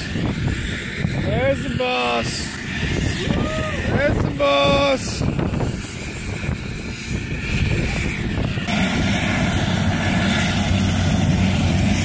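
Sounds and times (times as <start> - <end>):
helicopter engine and rotor: 0.0 - 12.0.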